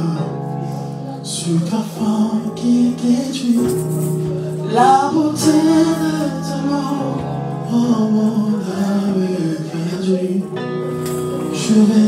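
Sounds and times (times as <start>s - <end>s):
electric keyboard chords: 0.0s - 12.0s
woman singing: 4.6s - 7.2s.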